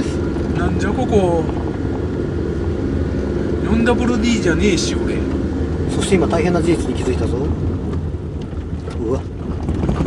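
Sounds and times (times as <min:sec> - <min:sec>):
car engine and tyres rumbling: 0:00.0 - 0:10.0.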